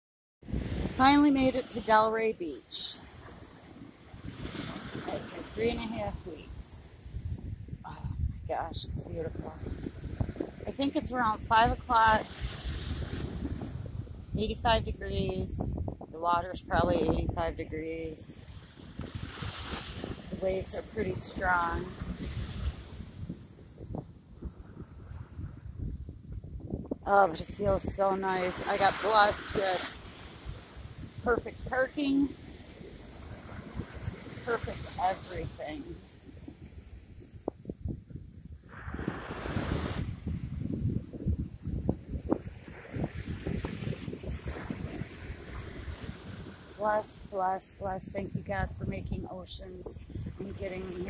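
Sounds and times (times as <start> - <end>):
wind buffeting microphone: 0.4 - 51.0
ocean surf breaking: 0.5 - 7.2, 8.8 - 14.4, 18.2 - 23.3, 27.2 - 37.0, 38.7 - 48.5.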